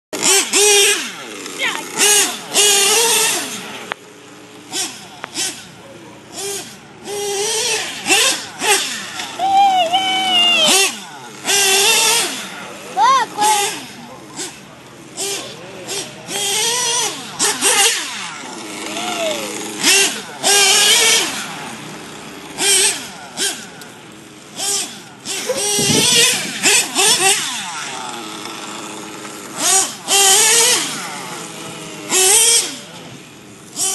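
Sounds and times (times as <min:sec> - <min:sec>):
nitro engine revving: 0:00.1 - 0:33.9.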